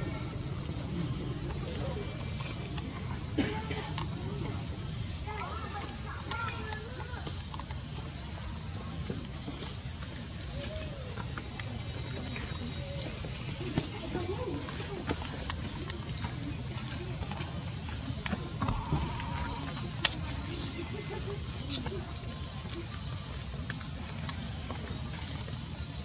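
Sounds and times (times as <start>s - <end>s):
steady low rumble: 0.0s - 5.3s
indistinct background voices: 11.8s - 23.2s.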